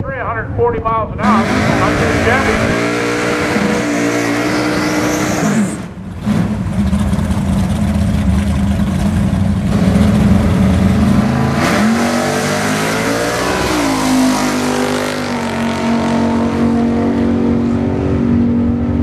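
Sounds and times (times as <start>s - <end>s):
drag car engine revving: 1.1s - 19.0s.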